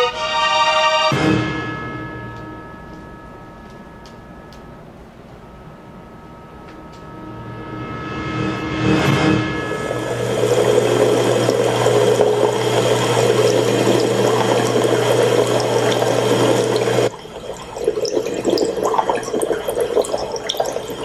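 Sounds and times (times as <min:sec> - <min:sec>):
low hum: 0:01.4 - 0:21.0
running water rushing: 0:09.9 - 0:21.0.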